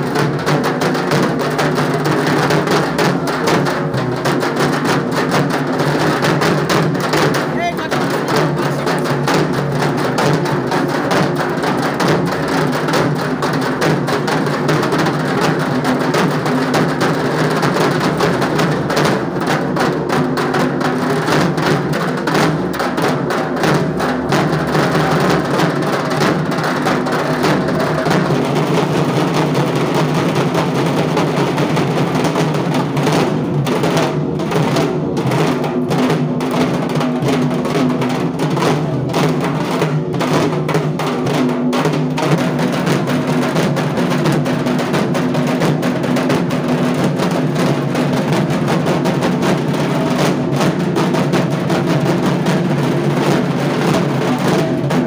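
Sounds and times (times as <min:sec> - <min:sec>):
large drums beaten with sticks: 0:00.0 - 0:55.0.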